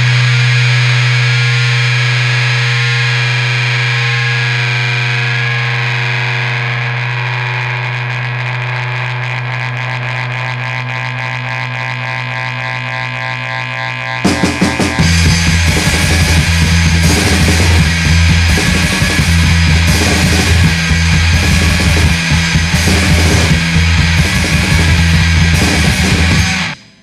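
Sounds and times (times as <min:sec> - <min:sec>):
distorted electric guitar chord ringing: 0:00.0 - 0:27.0.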